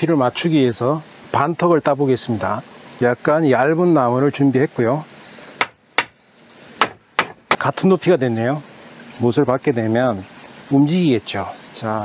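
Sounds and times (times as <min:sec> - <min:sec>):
hammer knocking on wood: 0:05.6 - 0:06.2, 0:06.8 - 0:07.7.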